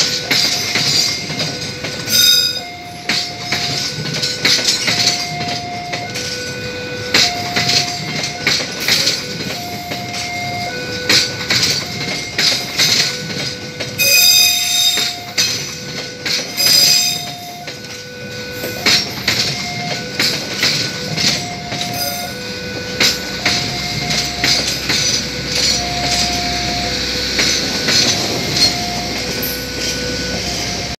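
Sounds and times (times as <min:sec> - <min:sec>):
train wheels clacking over rail joints: 0:00.0 - 0:31.0
two-tone crossing alarm: 0:00.0 - 0:31.0.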